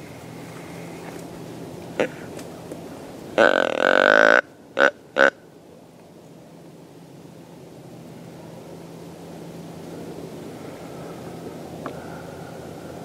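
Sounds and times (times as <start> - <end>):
deer grunt call: 3.4 - 5.4.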